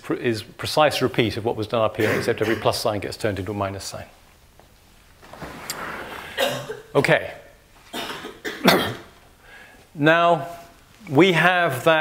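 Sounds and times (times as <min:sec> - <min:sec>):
man coughing: 0:02.0 - 0:02.8, 0:06.3 - 0:07.0, 0:07.9 - 0:09.1.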